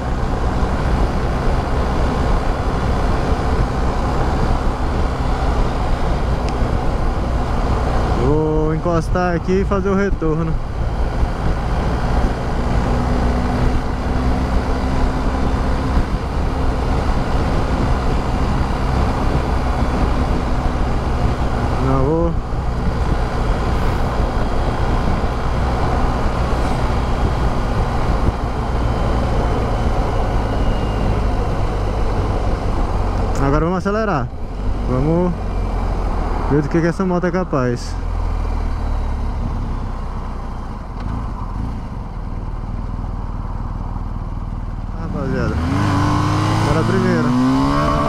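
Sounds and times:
heavy wind rush: 0:00.0 - 0:42.1, 0:45.0 - 0:48.0
motorcycle engine cruising: 0:00.0 - 0:48.0.

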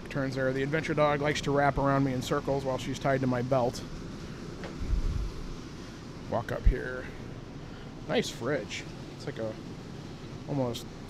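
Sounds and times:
steady background hum: 0:00.0 - 0:11.0
microphone handling noise: 0:04.6 - 0:05.5.

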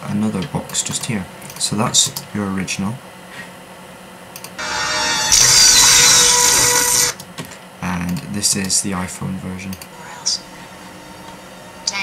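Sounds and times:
dense steady tones: 0:04.6 - 0:07.2.

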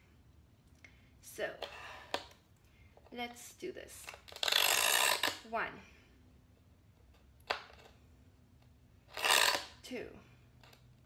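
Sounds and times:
diamond scribe scratching glass: 0:04.3 - 0:05.4, 0:09.1 - 0:09.8.

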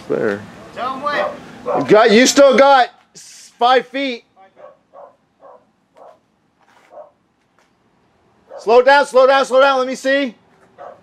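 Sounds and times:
dog barking faintly: 0:01.1 - 0:02.0, 0:04.6 - 0:06.2, 0:08.5 - 0:08.8, 0:10.8 - 0:11.0.

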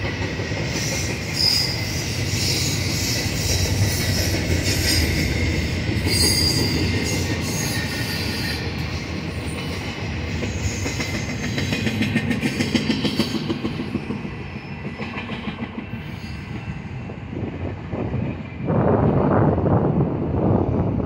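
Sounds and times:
train rumbling on rails: 0:00.0 - 0:21.0.

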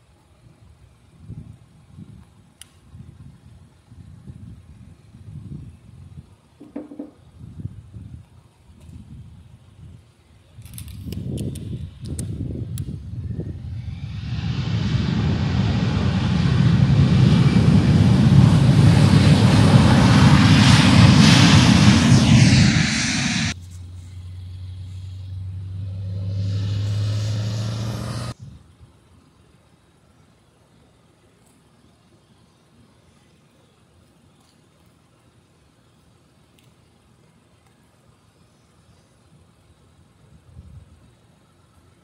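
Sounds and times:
jet engines at high power: 0:10.6 - 0:28.5
low hum: 0:11.7 - 0:28.4.

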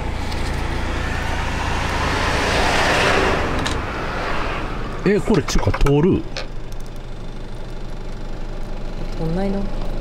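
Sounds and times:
car passing: 0:00.0 - 0:06.7
steady low rumble: 0:00.0 - 0:09.8.

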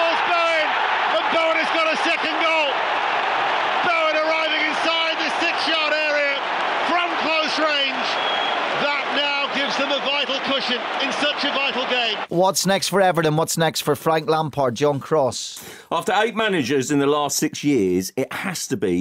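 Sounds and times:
crowd noise: 0:00.0 - 0:13.3.

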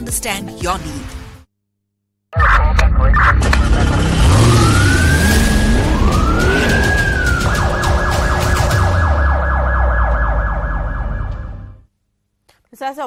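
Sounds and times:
steady low drone: 0:03.3 - 0:11.8
police siren wailing and yelping: 0:04.2 - 0:11.8.

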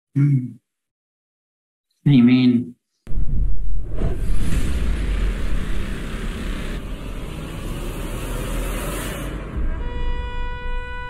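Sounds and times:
deep rumbling roar: 0:03.1 - 0:09.8
hissing rush: 0:03.8 - 0:09.6.

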